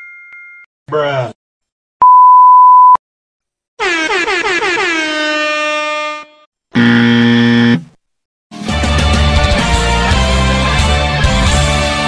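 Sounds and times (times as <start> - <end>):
censor bleep: 2.0 - 3.0
harsh electric buzzer: 6.1 - 7.9.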